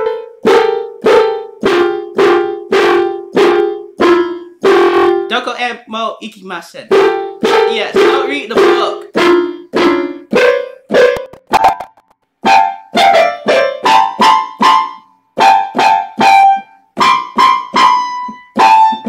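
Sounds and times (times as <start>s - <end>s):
keyboard melody: 0.0s - 5.9s, 6.8s - 19.0s.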